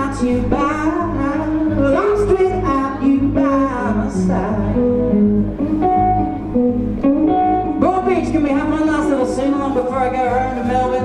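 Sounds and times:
amplified blues guitar: 0:00.0 - 0:11.0.

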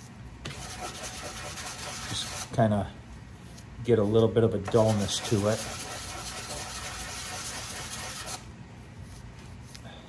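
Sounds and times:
wood sanding on sandpaper: 0:00.5 - 0:02.5, 0:04.0 - 0:08.4.

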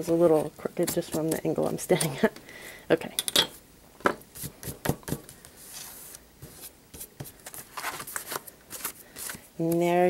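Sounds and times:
paper rustling: 0:04.4 - 0:09.5.

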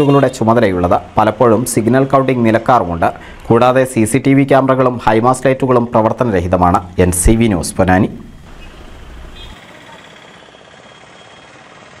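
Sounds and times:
street hiss: 0:03.1 - 0:03.7, 0:07.2 - 0:09.9.

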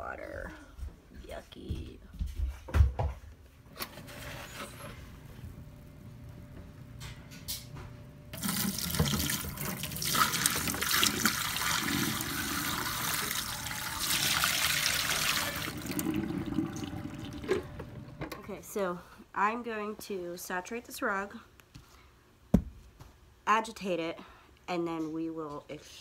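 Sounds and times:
water pouring into metal sink: 0:08.3 - 0:17.8.

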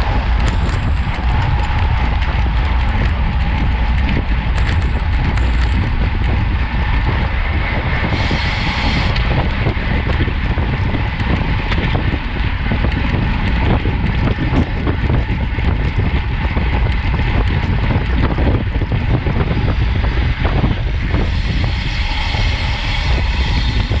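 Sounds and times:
tyres rumbling on asphalt: 0:00.0 - 0:24.0
wind buffeting microphone: 0:00.0 - 0:24.0.

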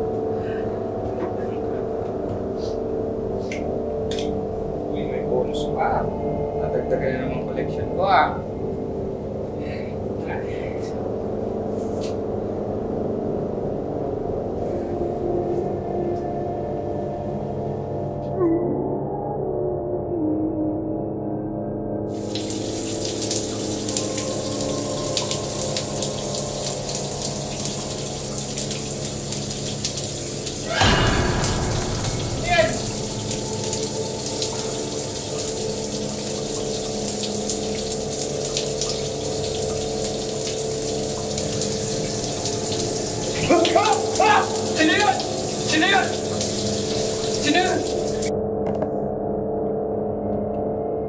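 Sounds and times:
low music drone: 0:00.0 - 0:51.0
shower running: 0:22.1 - 0:48.3
loud sudden hit: 0:30.6 - 0:35.0.

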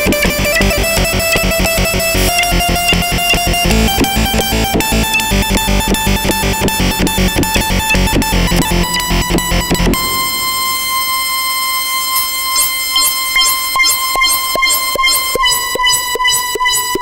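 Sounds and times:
deep synth bass: 0:00.0 - 0:12.0
short plucked synth notes: 0:00.0 - 0:12.1
held high synth tone: 0:01.6 - 0:13.6.

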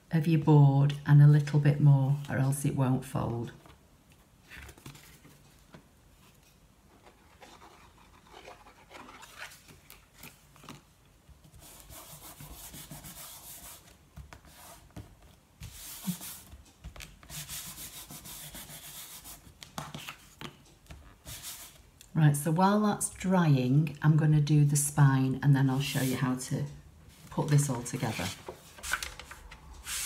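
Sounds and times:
paper rustling: 0:04.5 - 0:05.8, 0:07.0 - 0:10.8, 0:27.2 - 0:30.0
hands rubbing on board and paper: 0:11.6 - 0:15.0.

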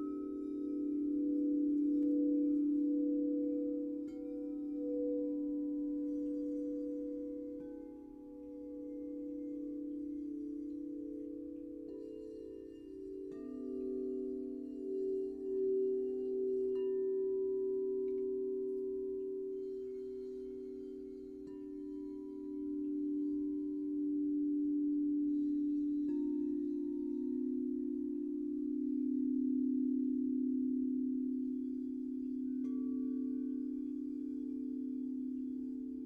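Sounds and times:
crystal singing bowls ringing: 0:00.0 - 0:36.0.

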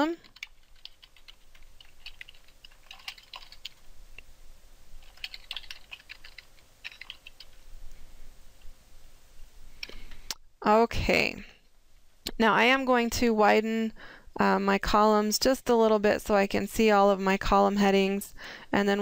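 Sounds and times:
computer keyboard typing: 0:00.2 - 0:03.8, 0:05.0 - 0:07.6.

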